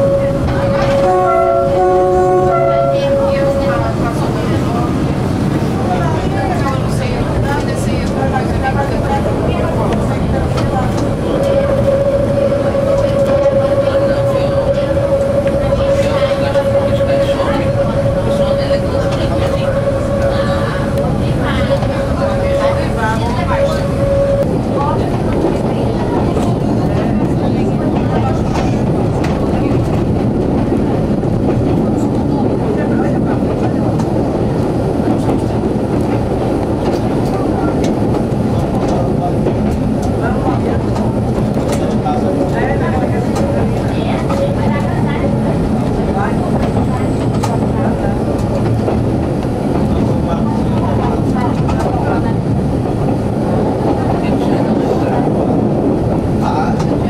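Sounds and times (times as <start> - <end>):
diesel railcar running: 0.0 - 57.0.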